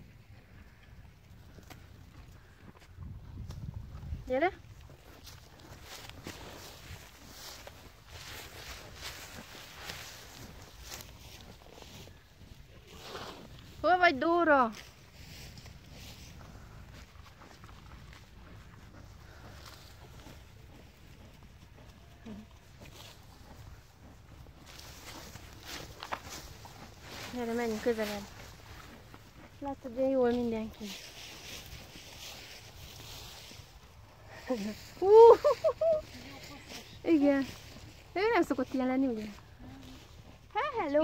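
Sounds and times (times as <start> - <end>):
wind rumbling on microphone: 0.0 - 13.9
footsteps on dirt track: 0.0 - 41.0
horse hoof steps on dirt: 14.7 - 34.1.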